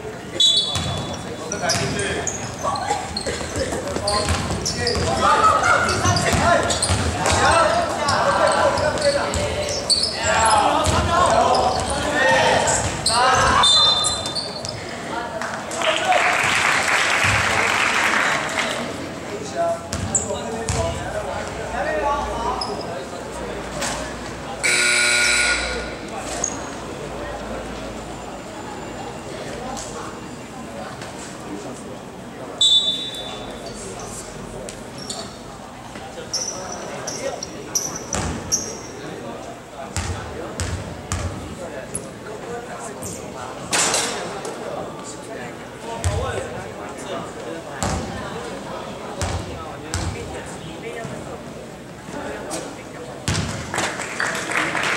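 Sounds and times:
voices chattering: 0.0s - 16.2s, 17.5s - 53.2s
ball hitting rim: 0.7s - 1.1s, 53.2s - 53.6s.

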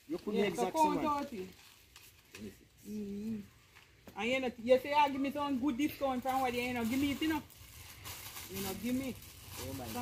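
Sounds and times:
people talking: 0.1s - 1.5s.

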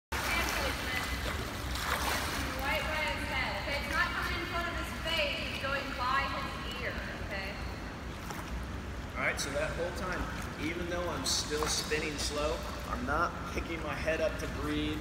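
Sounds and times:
swimmer splashing water: 0.1s - 15.0s
water lapping: 0.1s - 15.0s.

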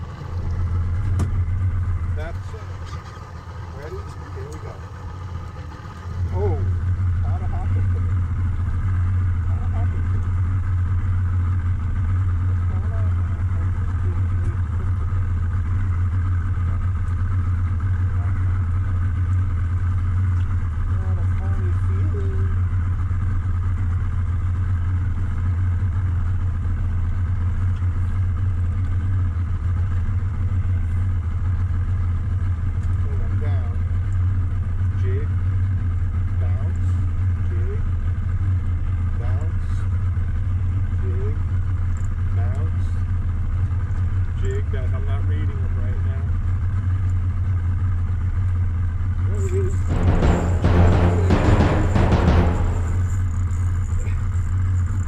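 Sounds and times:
outboard motor idling: 0.0s - 49.9s.

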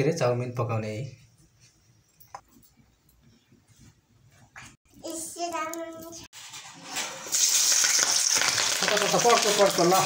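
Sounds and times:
onions sizzling in hot oil: 6.4s - 10.0s.

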